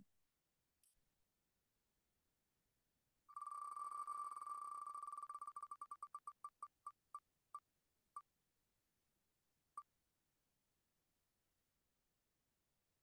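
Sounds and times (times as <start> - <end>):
electronic spinner ticks: 3.3 - 7.2.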